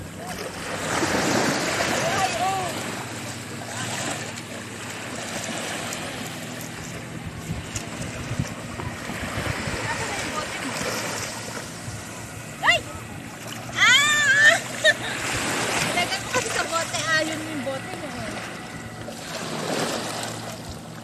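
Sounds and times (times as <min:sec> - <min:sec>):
small waves washing on sand: 0:00.0 - 0:21.0.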